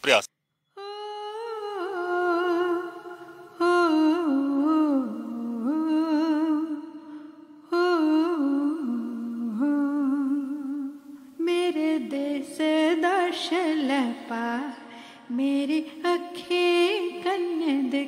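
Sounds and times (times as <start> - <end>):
person humming a slow melody: 0.8 - 11.9.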